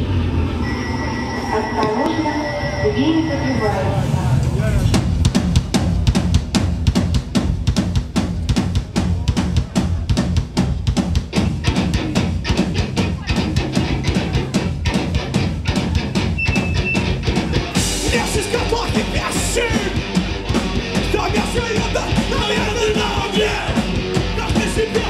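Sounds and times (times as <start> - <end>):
guitar and bass: 8.9 - 25.0.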